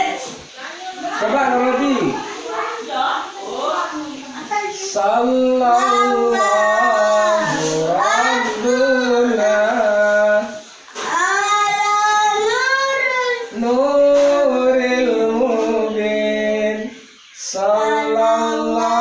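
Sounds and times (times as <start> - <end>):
boy and man singing unaccompanied: 4.4 - 19.0.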